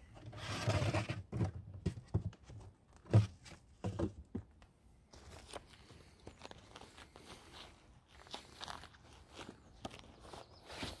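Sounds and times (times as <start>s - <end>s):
footsteps crunching on dry leaves: 5.2s - 11.0s.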